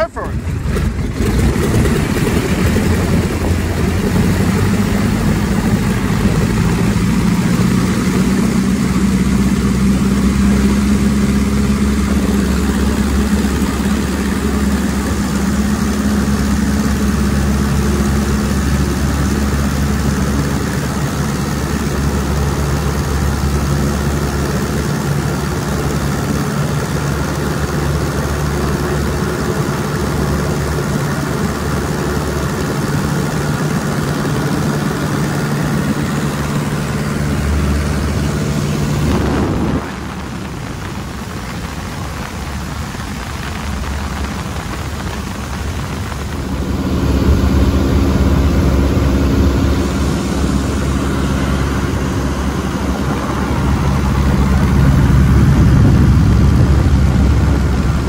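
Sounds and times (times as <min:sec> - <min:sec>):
propeller aircraft engine at high power: 0:00.0 - 0:58.0
wind rushing over microphone: 0:00.4 - 0:23.0, 0:25.3 - 0:58.0.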